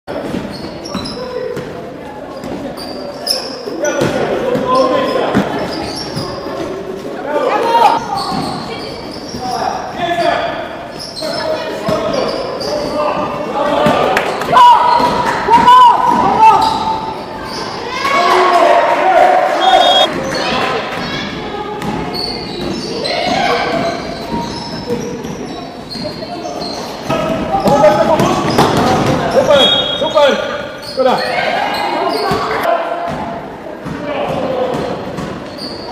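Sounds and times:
players' voices echoing: 0.1 - 35.9.

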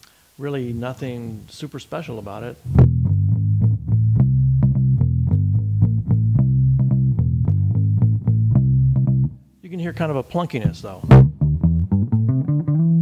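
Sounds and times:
plucked electric bass notes: 2.6 - 9.4, 10.0 - 13.0.

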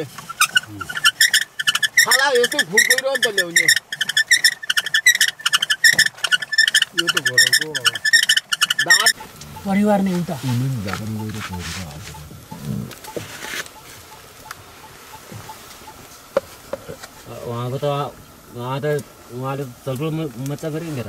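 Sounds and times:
high squeaky chirping: 0.0 - 17.3
water buffalo calling: 0.0 - 17.7.

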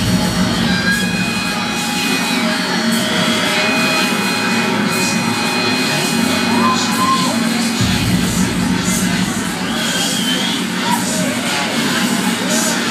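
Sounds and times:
low steady drone: 0.0 - 12.9
thin high tones: 0.1 - 7.8.

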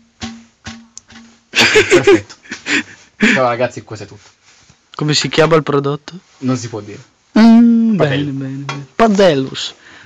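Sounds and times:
frying pan knocks ringing: 0.0 - 1.4.

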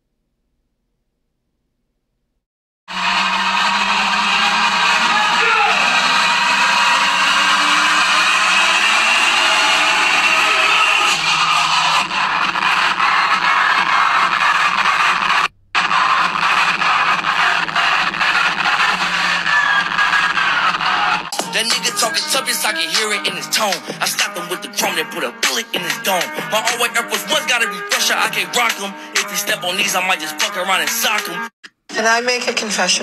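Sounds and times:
crowd cheering and shouting: 2.9 - 25.0
loud dj music: 2.9 - 31.5.

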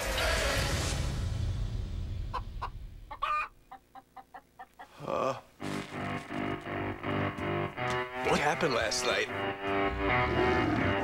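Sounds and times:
chicken clucking: 2.3 - 4.9
low background music: 5.6 - 11.0.

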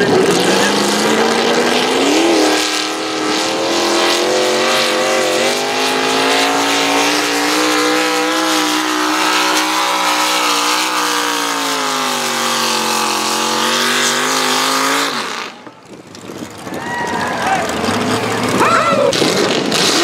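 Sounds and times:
tractor engine at full throttle: 0.0 - 20.0.

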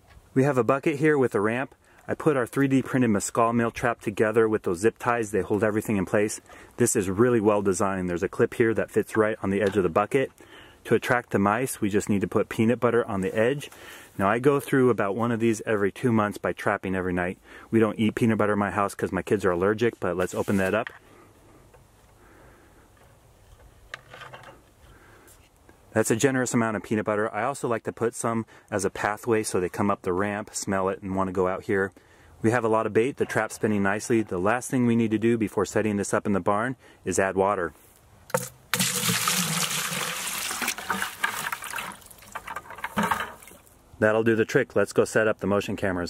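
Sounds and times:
soft rustling and scraping: 19.8 - 21.1, 22.9 - 25.6
water pouring into plastic bucket: 38.3 - 43.6.

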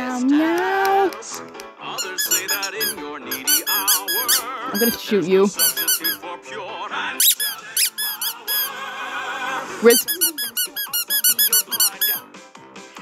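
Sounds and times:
instrumental backing track: 0.7 - 6.2, 9.9 - 12.2
rubber duck squeaking: 2.0 - 6.2, 7.2 - 8.7, 9.9 - 12.2.

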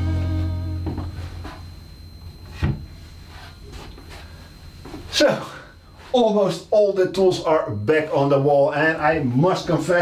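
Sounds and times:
rock music guitar chord: 0.0 - 1.4.

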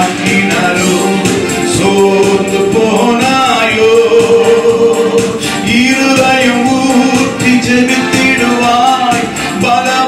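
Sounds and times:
man singing into microphone: 0.0 - 10.0
music with percussion beat: 0.0 - 10.0.

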